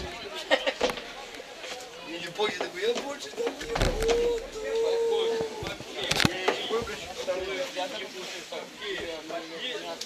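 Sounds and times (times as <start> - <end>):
players calling out: 3.4 - 5.7.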